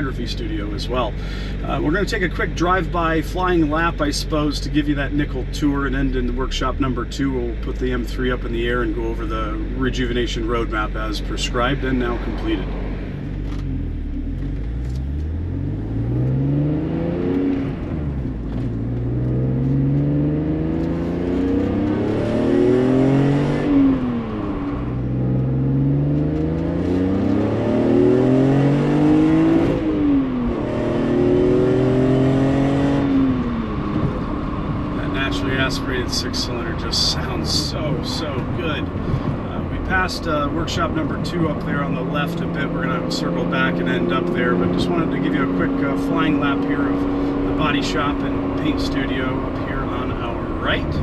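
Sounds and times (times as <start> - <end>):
car engine accelerating: 0.0 - 51.0.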